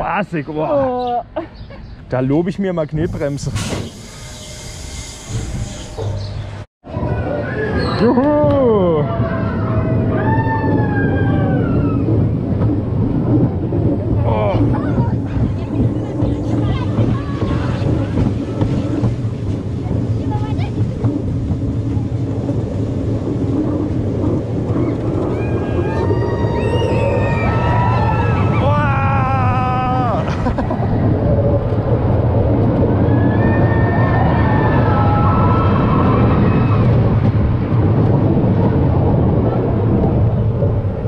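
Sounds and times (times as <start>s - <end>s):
roller coaster train rumbling on track: 0.0s - 41.0s.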